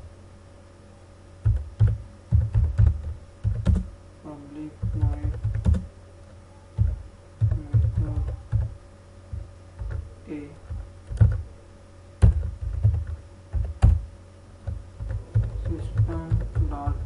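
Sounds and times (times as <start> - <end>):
keyboard typing: 1.4 - 3.9, 4.8 - 5.9, 6.8 - 11.4, 12.2 - 17.0.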